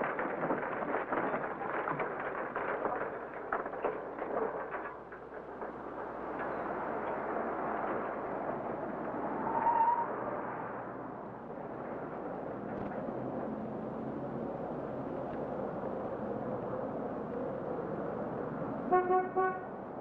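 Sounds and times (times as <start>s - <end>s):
street traffic noise: 0.0s - 20.0s
car horn tooting: 18.9s - 19.7s.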